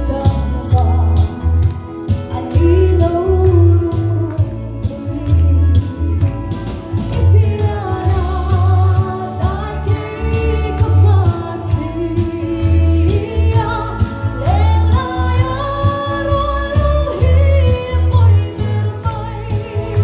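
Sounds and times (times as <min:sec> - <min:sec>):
music with pulsing bass: 0:00.0 - 0:20.0
woman singing into a microphone: 0:00.0 - 0:20.0.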